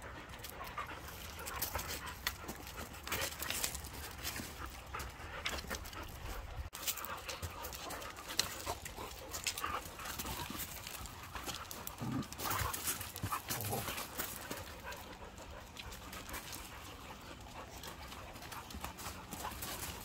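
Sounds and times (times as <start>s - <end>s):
dogs scuffling on gravel: 0.0s - 20.0s.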